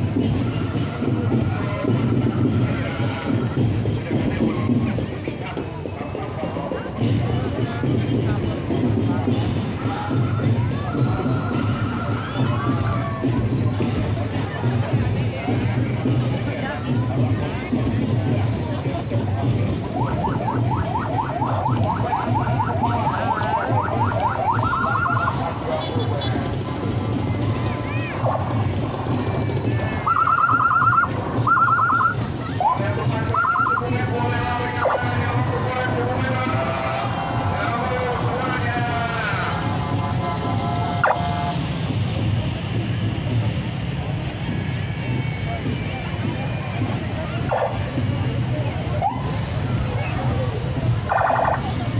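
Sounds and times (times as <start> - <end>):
crowd chatter: 0.0 - 51.9
motorcycle and truck engines rumbling: 0.0 - 51.9
police siren yelping: 19.8 - 25.7, 29.7 - 41.9, 47.3 - 48.0, 48.7 - 51.9
held pitched tone: 29.9 - 42.0.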